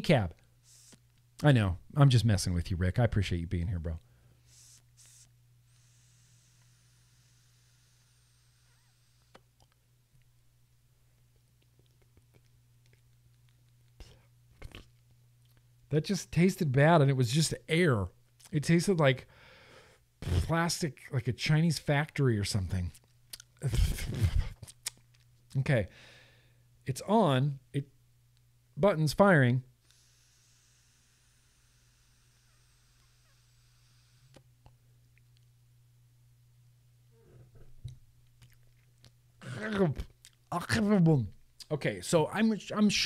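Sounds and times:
breathy drawing on e-cigarette: 0:04.4 - 0:09.4, 0:29.9 - 0:34.3.

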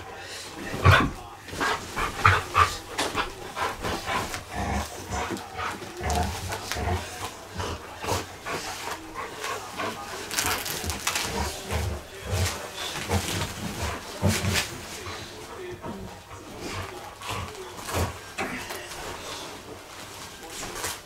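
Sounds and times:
dog play-wrestling noises: 0:00.0 - 0:21.0
cushion rustling and bumping: 0:10.2 - 0:15.0.

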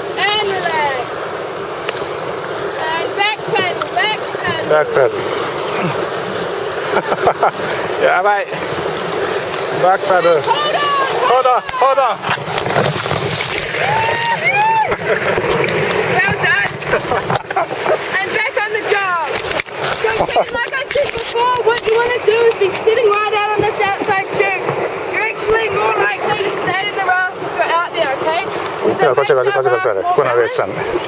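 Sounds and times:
river water rushing and splashing: 0:00.0 - 0:31.0
people shrieking and shouting: 0:10.3 - 0:12.0, 0:13.6 - 0:15.2.

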